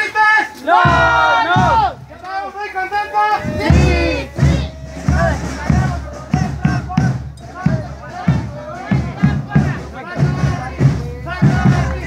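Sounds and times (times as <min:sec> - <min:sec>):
drum beating steady rhythm: 0:00.0 - 0:12.0
pitched melody line: 0:03.4 - 0:07.5.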